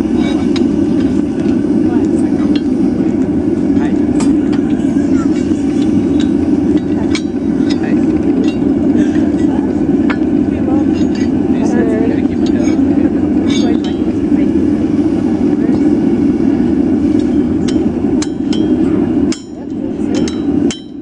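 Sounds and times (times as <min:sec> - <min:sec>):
steady rushing noise: 0:00.0 - 0:21.0.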